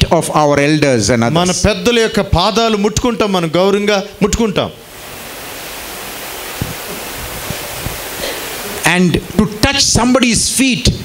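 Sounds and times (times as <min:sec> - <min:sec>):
steady hiss: 0:02.3 - 0:11.0.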